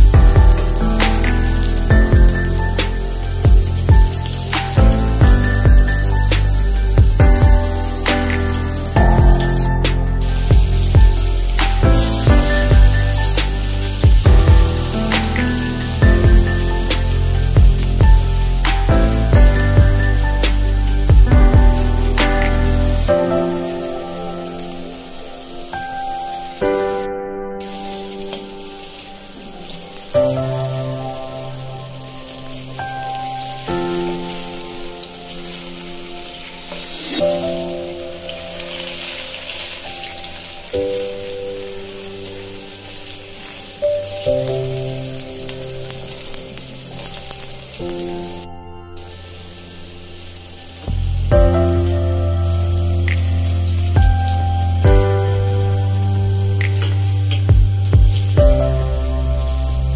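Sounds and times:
food sizzling in hot oil: 0:00.0 - 0:59.9
music with slow held chords: 0:00.0 - 0:59.9.

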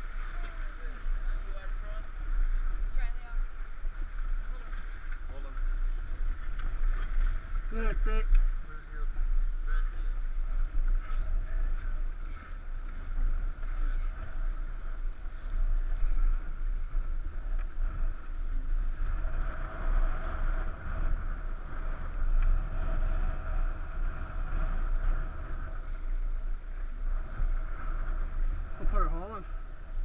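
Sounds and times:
wind rumble on microphone: 0:00.0 - 0:30.0.

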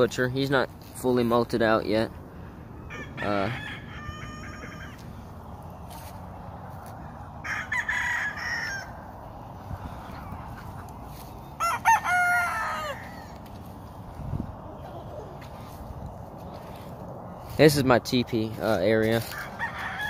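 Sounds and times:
roosters crowing: 0:02.3 - 0:17.8, 0:18.5 - 0:20.0.

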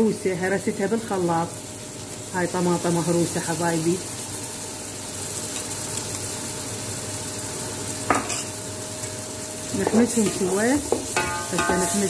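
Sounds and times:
vegetables sizzling in a pot: 0:00.0 - 0:12.0.

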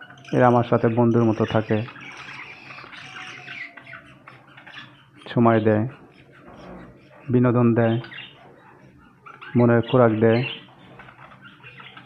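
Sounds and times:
budgerigars chirping: 0:00.0 - 0:12.0.

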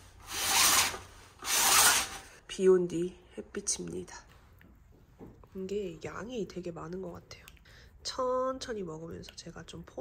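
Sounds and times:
fabric roller blind pulled up: 0:00.2 - 0:02.3.

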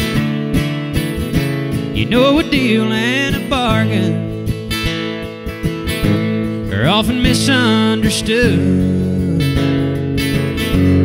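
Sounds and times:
acoustic guitars strummed: 0:00.0 - 0:11.0
person singing: 0:01.9 - 0:04.4, 0:06.6 - 0:10.0.

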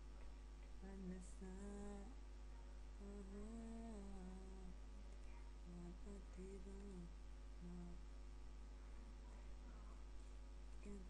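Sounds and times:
steady low hum: 0:00.0 - 0:11.0
person humming a slow tune: 0:00.8 - 0:02.1, 0:03.0 - 0:04.8, 0:05.7 - 0:08.0.

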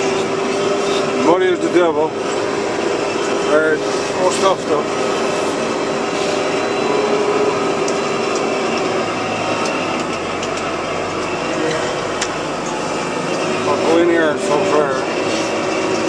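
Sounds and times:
diesel engine running: 0:00.0 - 0:16.0
steady whine: 0:00.0 - 0:16.0.

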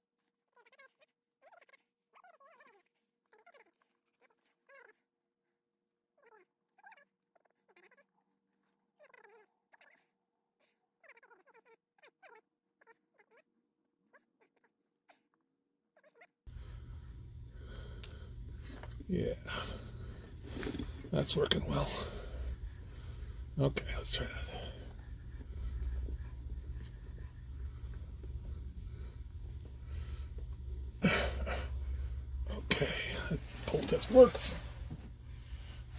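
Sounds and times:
low hum and hiss: 0:16.5 - 0:35.9.

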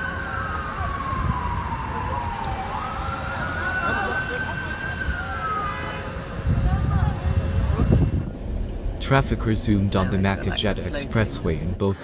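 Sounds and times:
siren wailing: 0:00.0 - 0:08.5
low rumble: 0:06.3 - 0:11.8.

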